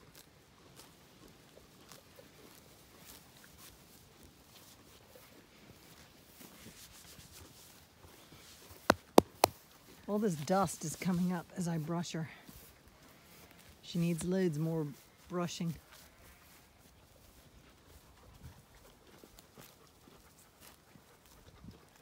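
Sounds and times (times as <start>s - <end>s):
pony tearing grass: 0.0s - 3.9s, 8.9s - 9.5s
sharp knocks: 8.9s - 9.5s.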